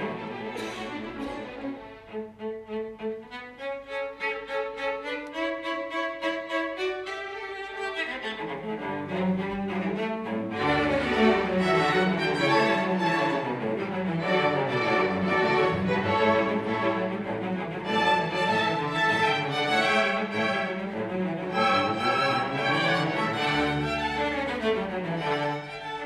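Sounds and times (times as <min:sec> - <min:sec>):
solo cello playing: 0:00.0 - 0:26.0
string orchestra: 0:00.0 - 0:26.0.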